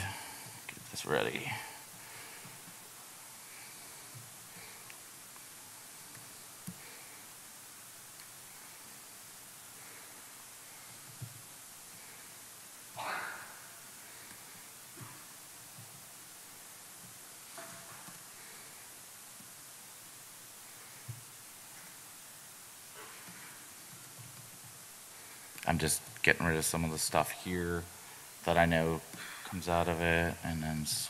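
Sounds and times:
microphone hiss: 0.0s - 31.0s.

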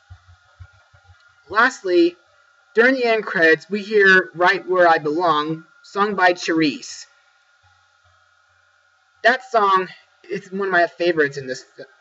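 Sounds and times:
low steady hum: 0.0s - 12.0s.

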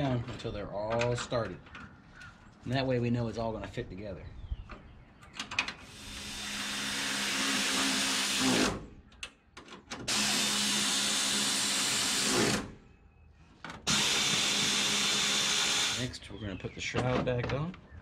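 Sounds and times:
cordless power driver whine: 5.9s - 8.7s.

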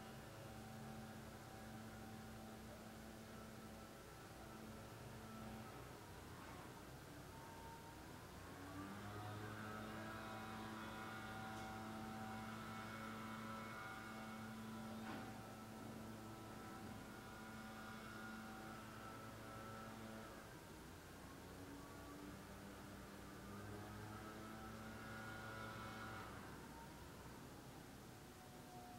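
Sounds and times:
faint machine hum: 0.0s - 28.9s.

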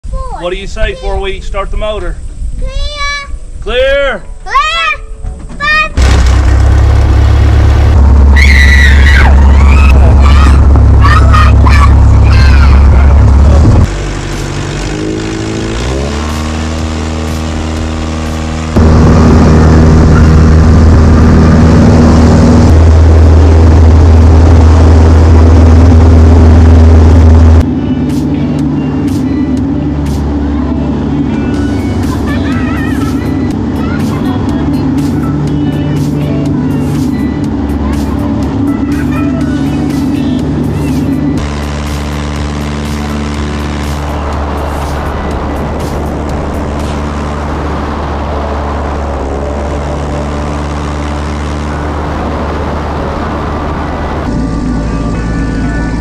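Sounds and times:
children laughing and shrieking: 8.4s - 13.2s, 32.2s - 34.1s.

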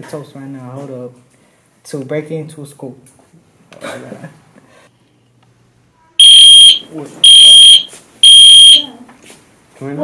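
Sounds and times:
fire alarm pulsing high tone: 6.2s - 8.9s.

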